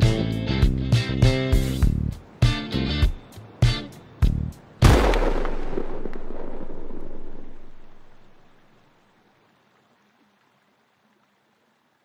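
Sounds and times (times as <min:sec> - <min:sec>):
deep cinematic boom: 0:04.8 - 0:08.4.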